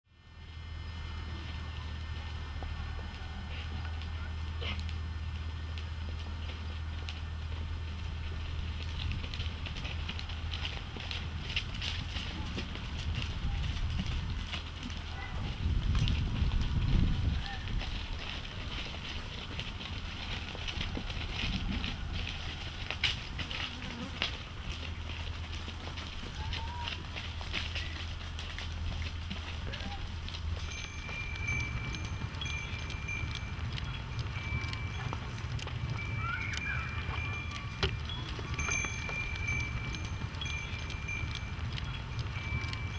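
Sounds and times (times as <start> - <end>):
goat hoof steps on stony ground: 1.9 - 42.9
low rumble: 26.9 - 42.9
steady low hum: 27.0 - 42.9
thin high ringing tone: 30.4 - 42.9.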